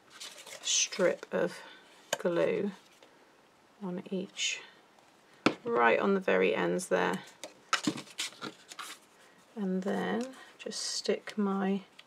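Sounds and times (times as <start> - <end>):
card tapping and scraping: 7.4 - 9.0.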